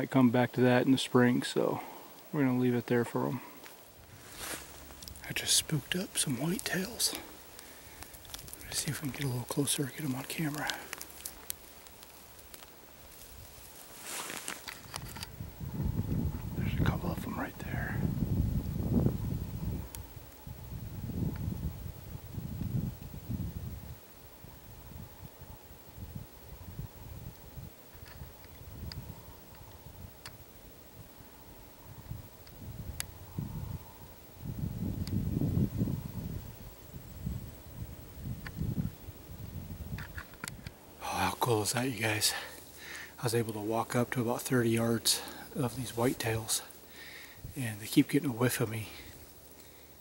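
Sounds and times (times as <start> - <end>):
quiet footsteps: 1.6 - 20.5
clothing rustle: 3.7 - 5.0, 10.1 - 15.2
faint sharp ticks: 4.9 - 13.5, 19.8 - 20.5, 27.3 - 30.4, 32.0 - 33.4, 34.9 - 35.2, 38.3 - 38.9, 39.9 - 40.8
light clicks: 39.9 - 40.8.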